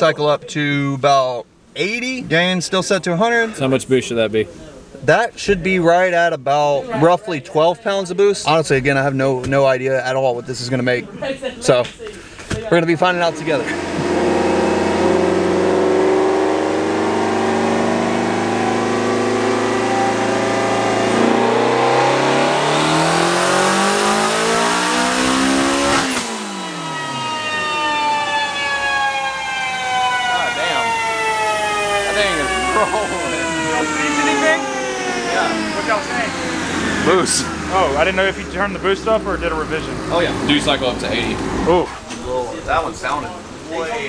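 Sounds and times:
car engine revving on dyno: 0:13.2 - 0:41.9
dyno rollers coasting down: 0:13.2 - 0:44.0.

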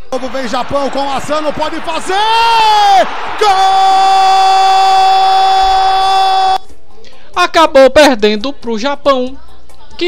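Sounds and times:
commentator yelling: 0:00.2 - 0:06.6
long held goal shout: 0:01.3 - 0:06.6.

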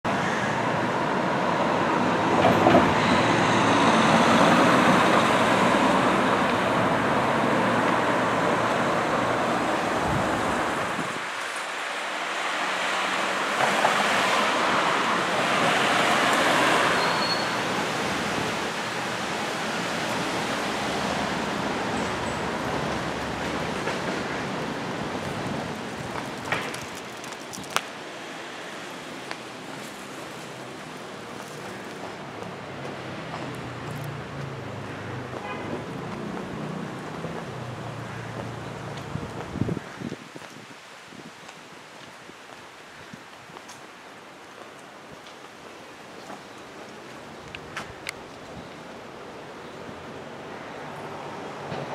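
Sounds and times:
steady traffic hum: 0:00.0 - 0:51.9
vehicles passing: 0:00.1 - 0:51.9.

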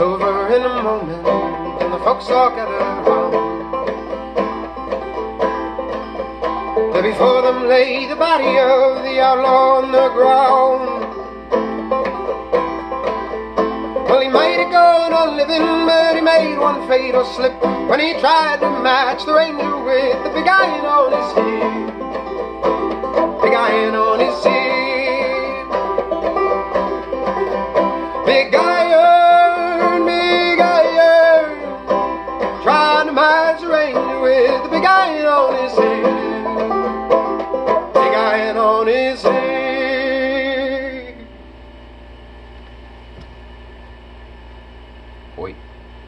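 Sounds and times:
banjo played clawhammer style: 0:00.0 - 0:41.2.

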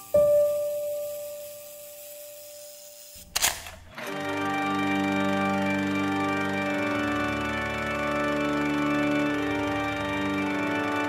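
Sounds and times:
camera shutter click: 0:03.2 - 0:03.8.

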